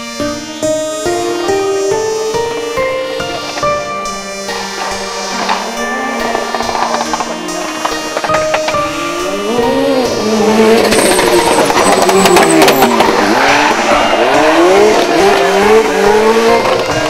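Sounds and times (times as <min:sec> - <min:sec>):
tyres squealing: 0:00.2 - 0:17.0
rally car engine revving: 0:00.7 - 0:17.0.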